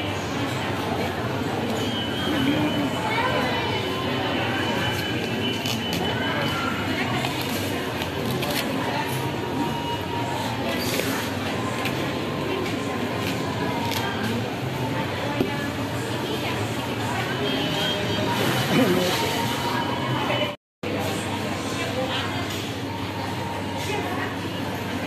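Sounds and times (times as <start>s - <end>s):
shoppers chattering: 0.0s - 25.0s.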